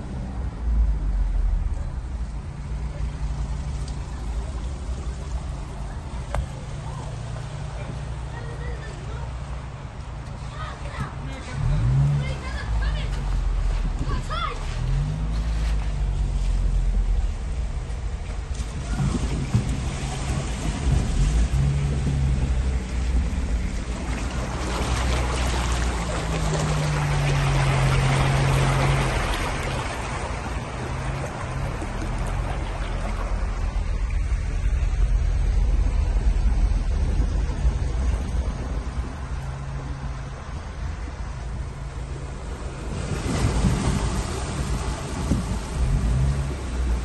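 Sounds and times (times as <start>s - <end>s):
car engine hum: 0.0s - 47.0s
water sloshing under tyres: 0.0s - 47.0s.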